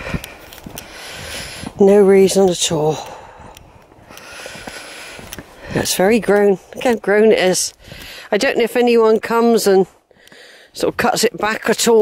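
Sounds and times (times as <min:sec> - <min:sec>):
footsteps on dirt path: 0:00.0 - 0:12.0
outdoor background noise: 0:00.0 - 0:12.0.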